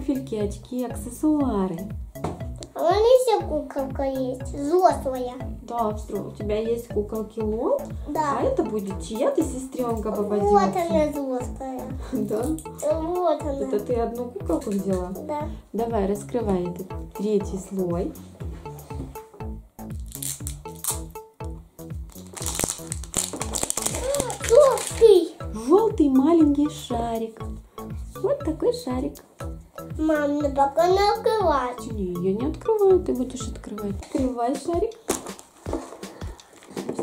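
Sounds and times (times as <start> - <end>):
background music short notes: 0.0 - 37.0
plastic wrapping crinkling: 22.1 - 25.3, 35.0 - 37.0.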